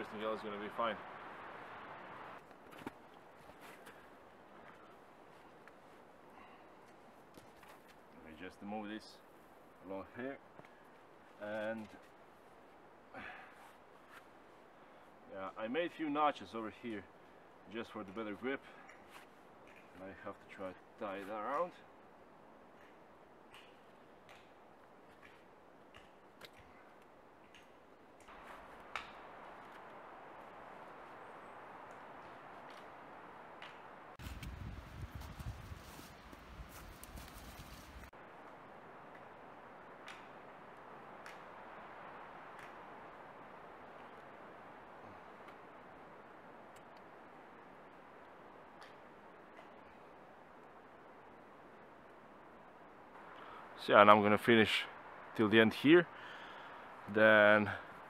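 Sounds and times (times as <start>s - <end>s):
low steady hiss: 0.0s - 58.0s.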